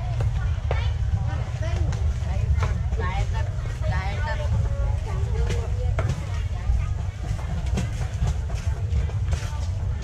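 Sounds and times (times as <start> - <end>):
people talking: 0.0 - 10.0
steady low rumble: 0.0 - 10.0.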